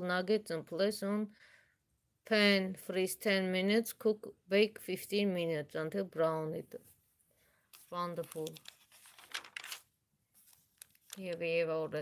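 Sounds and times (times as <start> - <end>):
magazine page turning: 7.7 - 11.6.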